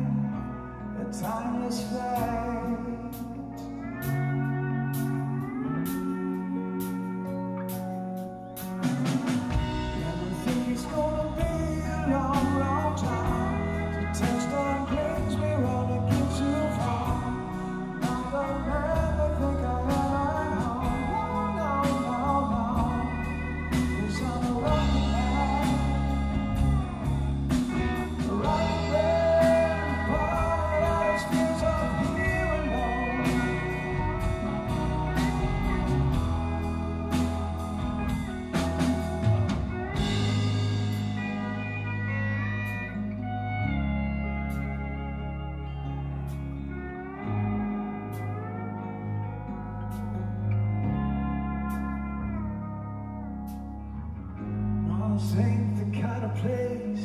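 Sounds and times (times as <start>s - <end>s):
bass guitar: 0.0s - 57.0s
electric rhythm guitar: 0.0s - 57.0s
lap steel slide guitar: 0.0s - 57.0s
drums: 1.2s - 48.8s, 49.8s - 52.3s, 53.4s - 57.0s.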